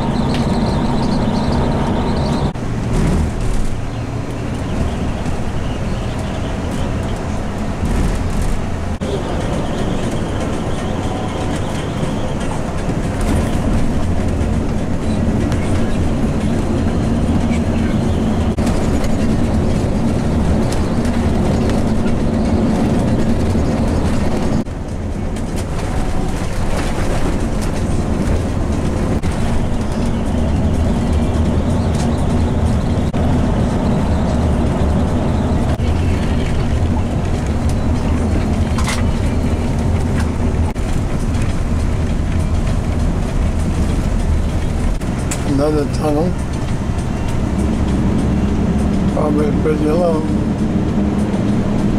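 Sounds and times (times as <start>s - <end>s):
engine drone: 0.0s - 51.9s.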